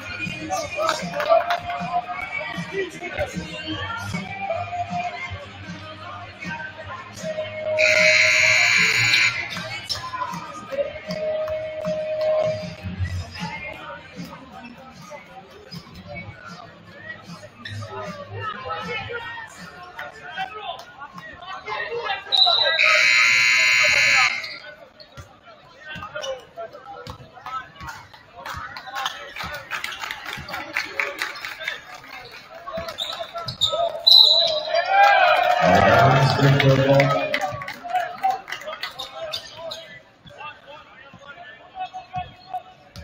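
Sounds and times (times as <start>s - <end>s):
music playing: 0.0s - 19.9s, 35.2s - 38.1s
crowd chatter: 0.0s - 43.0s
scoreboard horn blast: 7.8s - 9.4s, 22.8s - 24.4s.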